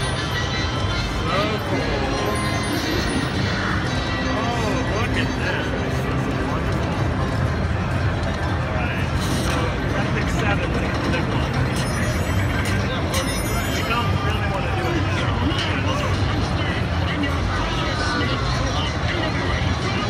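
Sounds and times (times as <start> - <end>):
high chiming tones: 0.0 - 4.3, 11.6 - 14.3
slot machine game sounds: 0.0 - 6.3, 10.8 - 14.5
music: 0.0 - 10.1
many voices talking: 0.0 - 20.0.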